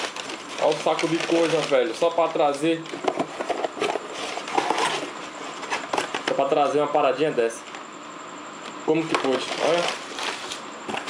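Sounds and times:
plastic bag crinkling: 0:00.0 - 0:03.0, 0:09.2 - 0:11.0.

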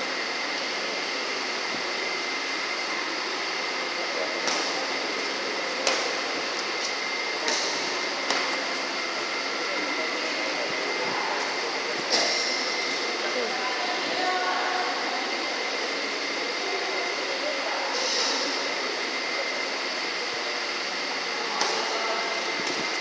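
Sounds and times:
fan noise: 0:00.0 - 0:23.0
racket striking shuttlecock: 0:05.8 - 0:06.1.

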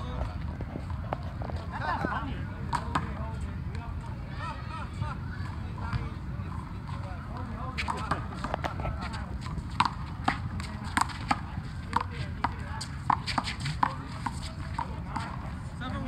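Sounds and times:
voices: 0:00.0 - 0:16.0.

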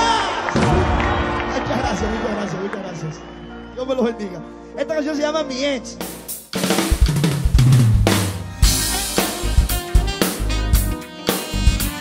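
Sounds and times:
backing music: 0:00.0 - 0:12.0
drum kit playing a groove: 0:06.0 - 0:12.0.

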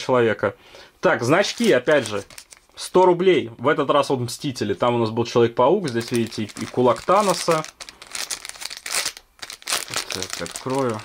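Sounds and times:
plastic packaging crinkling: 0:01.2 - 0:02.8, 0:05.8 - 0:11.0.

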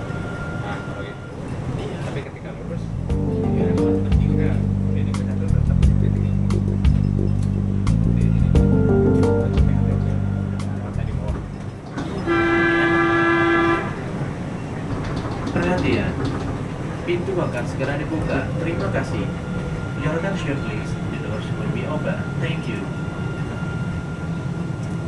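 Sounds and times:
music: 0:03.0 - 0:11.7
steady horn tone: 0:12.2 - 0:14.0.

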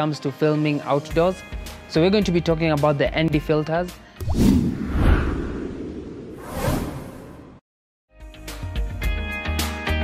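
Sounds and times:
whoosh sound effects: 0:04.2 - 0:07.6.

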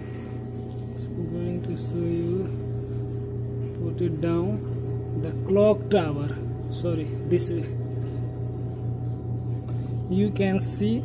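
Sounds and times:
air conditioner humming: 0:00.0 - 0:11.0.

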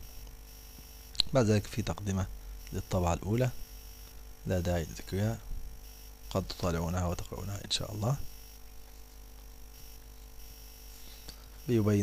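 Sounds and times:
faint hum with hiss: 0:00.0 - 0:12.0.

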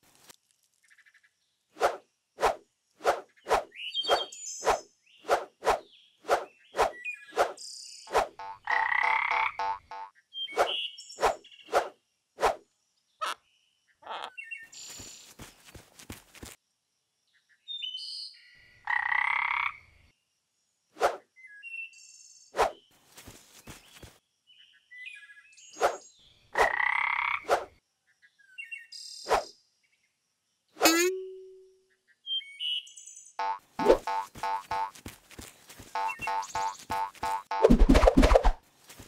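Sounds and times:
chirpy blips: 0:03.1 - 0:11.9, 0:30.8 - 0:31.8, 0:33.4 - 0:35.0, 0:35.9 - 0:38.5
cartoon frog croaks: 0:08.4 - 0:10.1, 0:13.2 - 0:13.4, 0:14.0 - 0:14.4, 0:33.4 - 0:34.9
bouncy rhythmic music: 0:33.4 - 0:34.9, 0:36.0 - 0:38.0.

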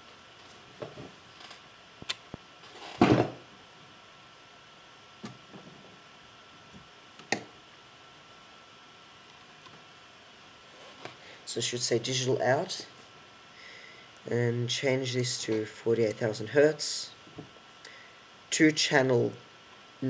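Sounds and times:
thump: 0:03.0 - 0:03.4.

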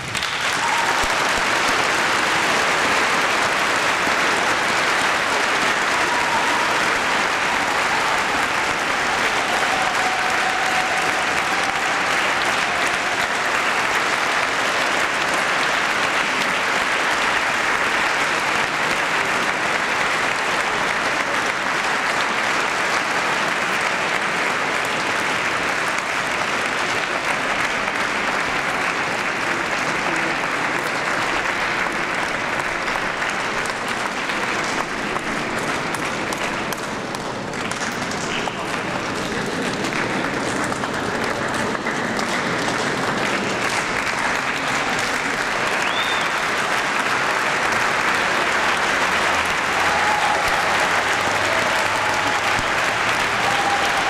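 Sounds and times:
audience applauding: 0:00.0 - 0:54.0.

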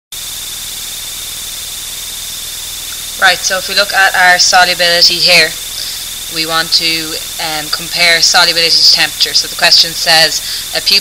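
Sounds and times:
thin high electronic whine: 0:00.1 - 0:11.0.

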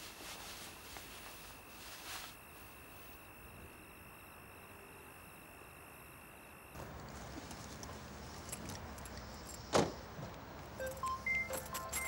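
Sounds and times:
car keys jingling: 0:10.8 - 0:12.0.

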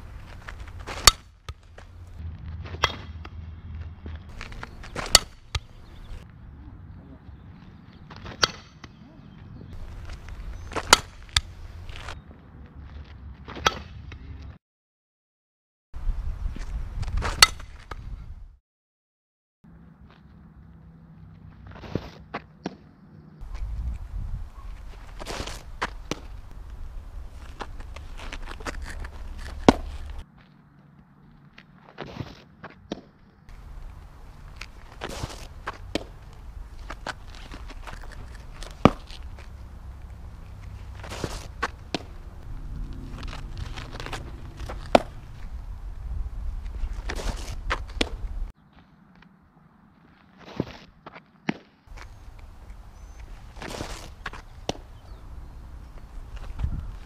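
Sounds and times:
foot scraping through dirt: 0:00.0 - 0:06.2, 0:09.7 - 0:12.2, 0:21.5 - 0:22.5, 0:23.4 - 0:30.6, 0:31.4 - 0:32.9, 0:33.5 - 0:49.3, 0:49.9 - 0:57.0
shoes scuffing on dirt: 0:00.0 - 0:06.3, 0:09.4 - 0:13.6, 0:20.0 - 0:22.8, 0:23.4 - 0:57.0
sharp pops of softball pitch: 0:04.4 - 0:06.0, 0:29.4 - 0:30.2, 0:34.6 - 0:39.5, 0:41.0 - 0:42.2, 0:44.0 - 0:45.2, 0:47.0 - 0:48.3, 0:53.2 - 0:55.0
wind rumble on microphone: 0:16.0 - 0:18.6, 0:23.4 - 0:30.2, 0:41.8 - 0:48.5, 0:54.5 - 0:57.0
ball popping into mitt: 0:43.9 - 0:45.3.

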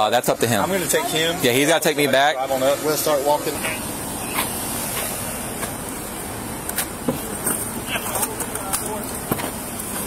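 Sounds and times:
outdoor background rumble: 0:00.0 - 0:10.0.

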